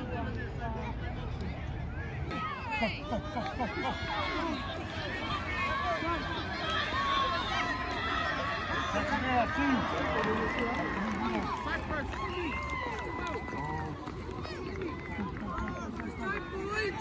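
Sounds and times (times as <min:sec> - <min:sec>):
many voices shouting: 0:02.3 - 0:17.0.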